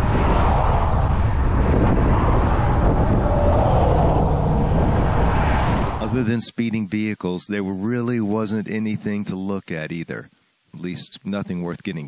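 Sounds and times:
vehicles passing at speed: 0.0 - 6.3
wind rumble on microphone: 0.0 - 6.3.

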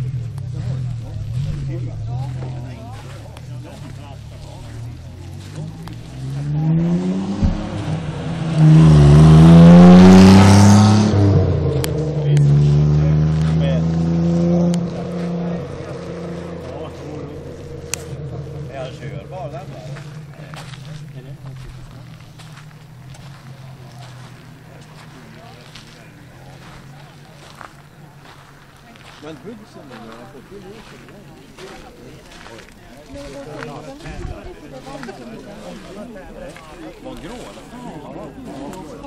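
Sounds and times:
car engine idling and revving: 0.0 - 39.0.

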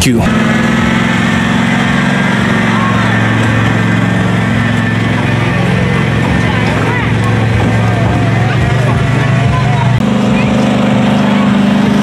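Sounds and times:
small engine humming: 0.0 - 12.0
faint children's voices: 2.4 - 12.0.

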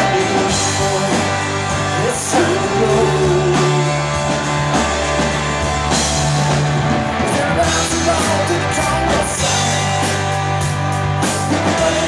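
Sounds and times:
man singing: 0.0 - 4.5, 7.2 - 10.4, 11.5 - 12.0
live rock band playing: 0.0 - 12.0.

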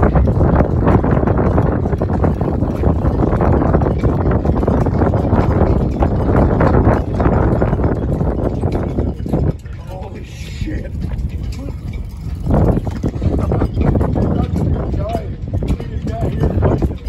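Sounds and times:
heavy low rumble: 0.0 - 17.0.

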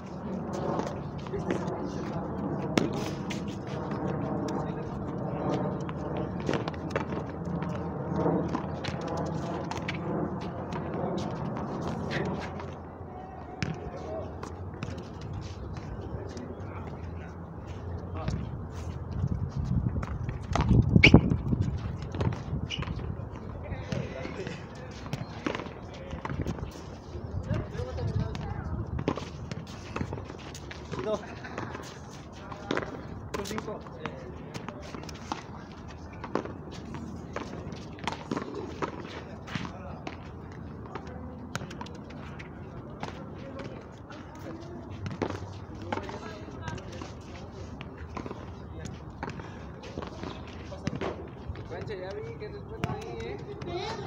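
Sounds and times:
voices of players and onlookers: 0.0 - 54.0.

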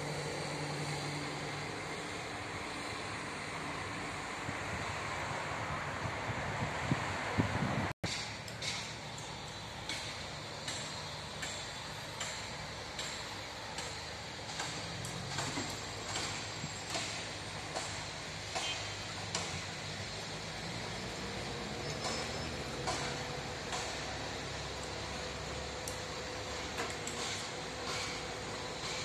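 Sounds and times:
city traffic rumble: 0.0 - 29.0
construction machinery: 0.0 - 29.0.

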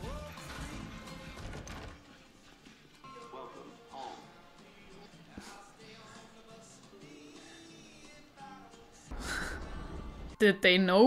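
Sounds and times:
quiet drama music: 9.0 - 11.0.

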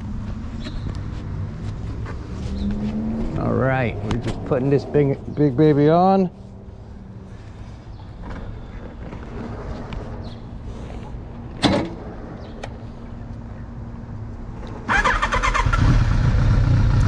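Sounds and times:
motorcycle engine starting and running: 14.6 - 17.0.

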